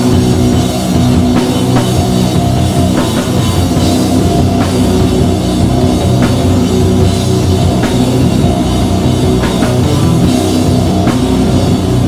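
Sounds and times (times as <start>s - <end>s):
slow heavy metal band: 0.0s - 12.0s.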